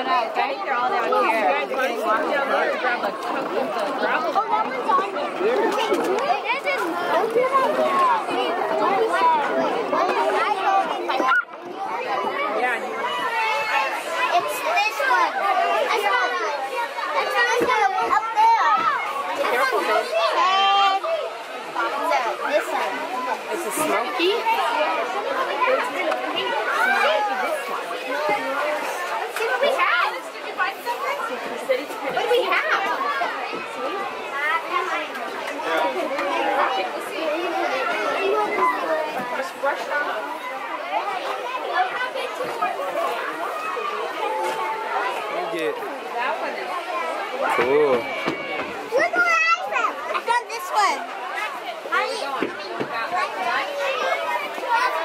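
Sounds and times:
children chattering: 0:00.0 - 0:55.0.

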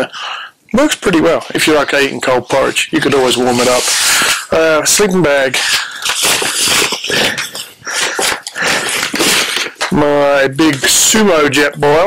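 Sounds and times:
nylon fabric rustling and scraping: 0:01.5 - 0:05.0.

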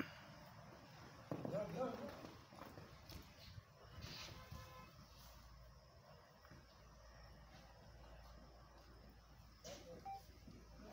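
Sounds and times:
hoofbeats on sandy ground: 0:00.7 - 0:05.4.

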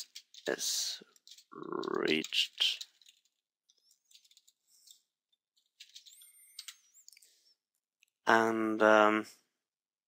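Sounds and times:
keyboard and mouse clicks: 0:01.1 - 0:05.0, 0:05.6 - 0:07.3.

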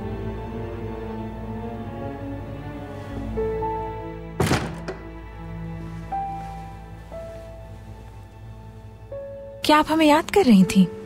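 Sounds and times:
background music: 0:00.0 - 0:11.0
door latch click: 0:04.4 - 0:05.2
wooden door shutting: 0:04.4 - 0:05.3.

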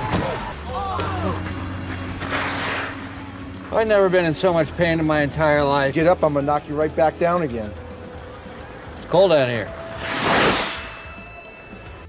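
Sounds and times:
whoosh: 0:02.1 - 0:03.3, 0:09.8 - 0:11.4.

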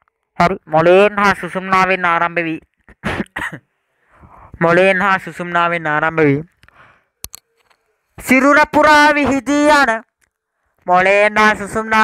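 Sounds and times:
person speaking: 0:00.4 - 0:03.6, 0:04.3 - 0:12.0
person coughing: 0:02.9 - 0:03.7.

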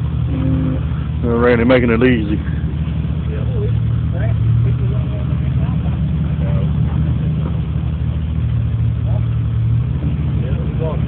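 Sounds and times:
vehicle engine idling: 0:00.0 - 0:11.0
faint voices: 0:00.2 - 0:11.0.

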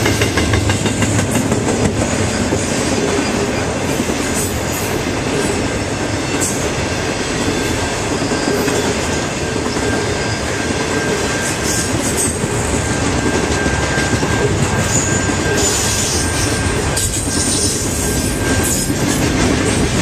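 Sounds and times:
train wheels rolling on rail: 0:00.0 - 0:20.0
high wheel squeal: 0:04.4 - 0:19.8.

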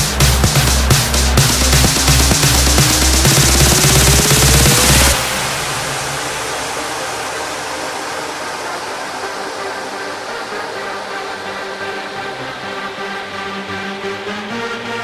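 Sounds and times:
held synth chords: 0:00.0 - 0:15.0
pounding dance beat: 0:00.0 - 0:15.0
rising synth sweep: 0:00.0 - 0:15.0.

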